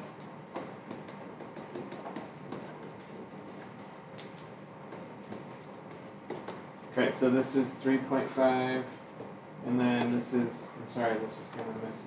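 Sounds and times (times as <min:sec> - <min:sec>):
stylus tapping on board: 0:00.5 - 0:06.6.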